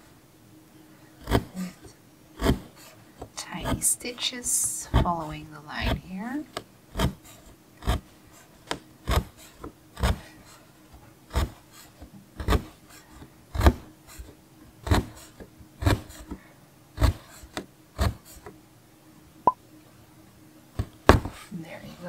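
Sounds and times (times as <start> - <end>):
punch needle pushing through fabric: 1.2 - 1.8, 2.4 - 3.0, 5.8 - 10.2, 11.3 - 11.6, 12.4 - 12.8, 13.5 - 13.9, 14.8 - 16.4, 17.0 - 18.5.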